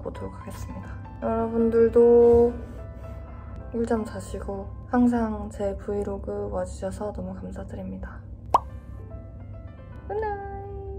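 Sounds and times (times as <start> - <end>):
soft background music: 0.0 - 10.9.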